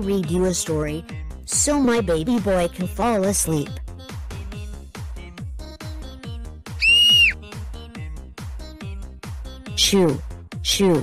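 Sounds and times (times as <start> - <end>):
loud high whistle tone: 6.8 - 7.4.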